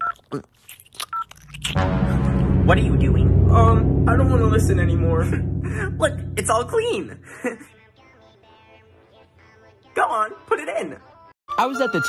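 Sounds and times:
low rumbling sound: 1.3 - 7.6.

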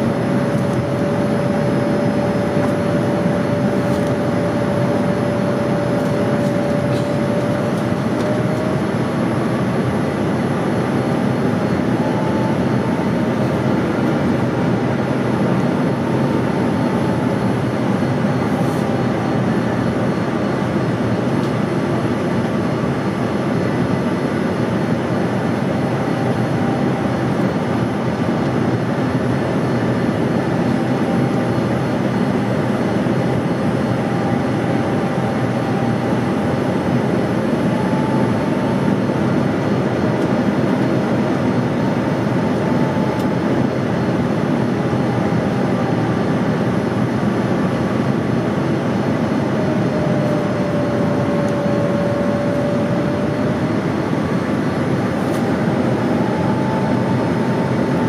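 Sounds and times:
faint steady whine: 0.0 - 58.0
jet engine and airflow rush: 0.0 - 58.0.

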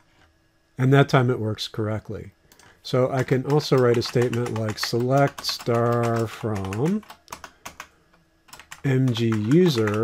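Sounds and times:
computer keyboard keystrokes: 2.5 - 7.9, 8.5 - 10.0.

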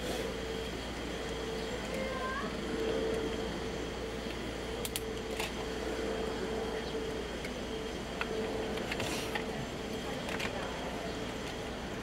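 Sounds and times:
low hum: 0.0 - 12.0
mid-pitched hum: 0.0 - 12.0.

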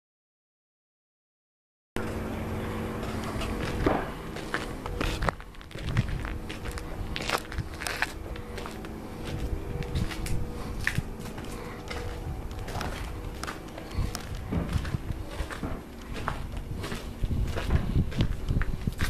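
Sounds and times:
faint hum: 2.0 - 19.0
footsteps crunching on dry dirt: 2.0 - 19.0
steady low rumble: 2.0 - 19.0.

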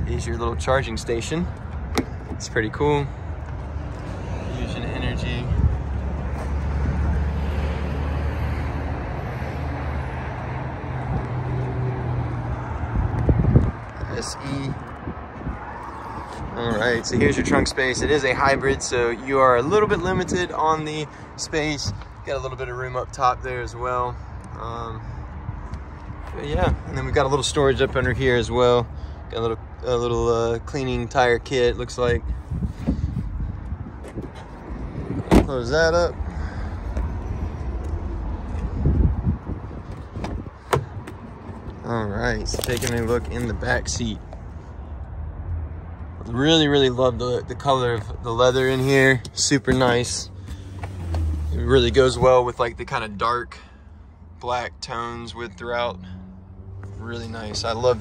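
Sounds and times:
motor vehicle hum: 0.0 - 18.8, 31.9 - 58.0
outdoor traffic noise: 0.0 - 58.0
wind rumble on microphone: 4.2 - 7.3, 12.6 - 20.6, 31.9 - 43.8.

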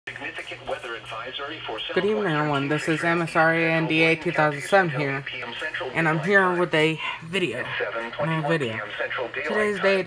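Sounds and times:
tinny radio voice: 0.1 - 10.0
woman's voice: 2.0 - 5.3, 6.0 - 8.8.

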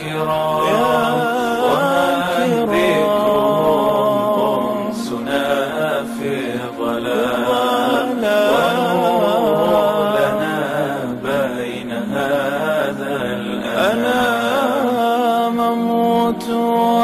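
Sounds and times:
voices singing ornamented melody: 0.0 - 17.0.

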